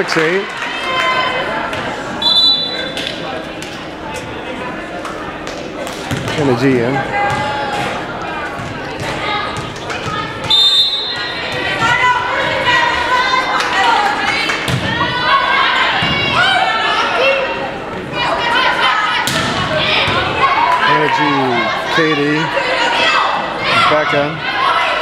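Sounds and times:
referee's whistle blast: 2.2s - 3.0s, 10.5s - 11.2s
people shouting in echoing hall: 9.2s - 25.0s.

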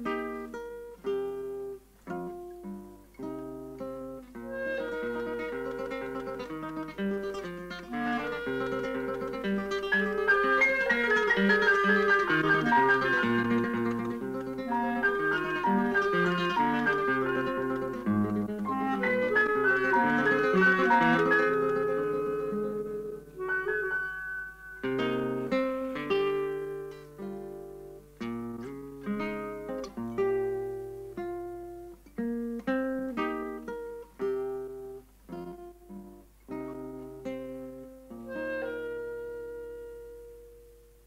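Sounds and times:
guitar clarinet and piano trio: 0.0s - 41.0s.

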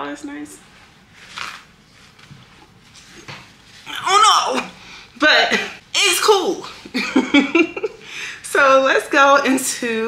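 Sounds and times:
paper towel rustling: 0.6s - 4.2s
person speaking: 3.8s - 6.8s.

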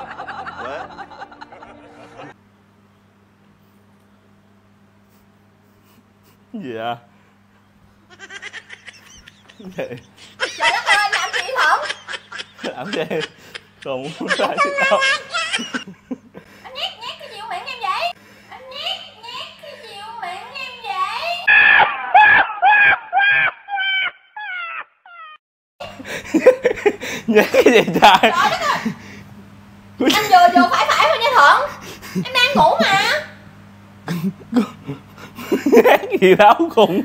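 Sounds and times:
person laughing: 0.0s - 2.4s, 8.1s - 16.5s, 21.5s - 29.0s, 34.1s - 37.0s
faint steady hum: 0.0s - 24.1s, 25.8s - 37.0s.

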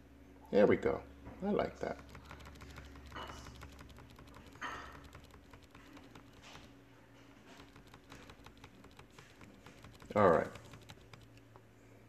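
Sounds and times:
keyboard keys clicking: 1.8s - 6.8s, 7.5s - 11.6s.

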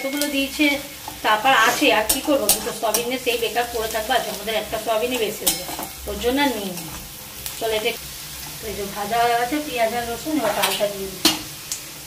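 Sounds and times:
oil sizzling: 0.0s - 12.0s
metal spatula scraping pan: 0.1s - 7.6s.

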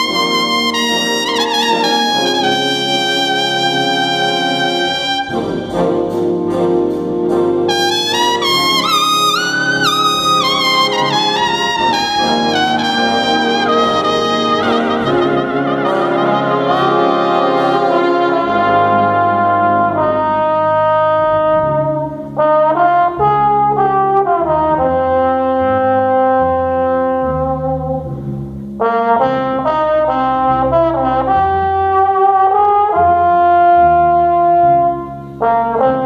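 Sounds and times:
big band playing a ballad: 0.0s - 36.0s
solo trumpet: 0.0s - 36.0s
trombone melody: 0.0s - 36.0s.

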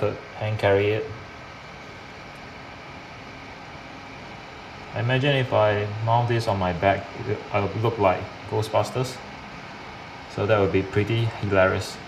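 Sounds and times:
cooling fan blowing: 0.0s - 12.0s
water pump circulating water: 0.0s - 12.0s.

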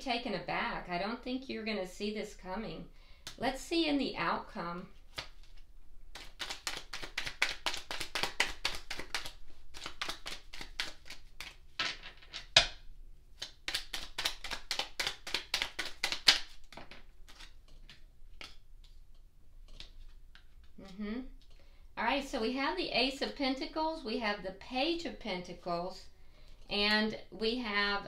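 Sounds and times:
cards being shuffled: 4.9s - 12.7s, 13.3s - 21.6s.

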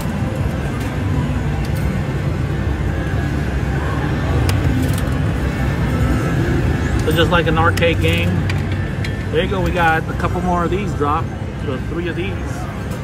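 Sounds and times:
background music: 0.0s - 13.0s
slot machines: 0.0s - 13.0s.

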